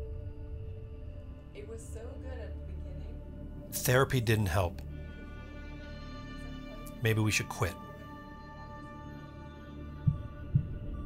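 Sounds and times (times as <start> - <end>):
heartbeat thumps: 9.8 - 11.0.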